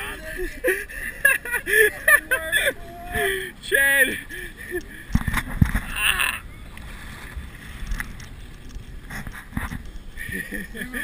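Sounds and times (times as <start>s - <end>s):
wind rumbling on microphone: 4.2s - 11.0s.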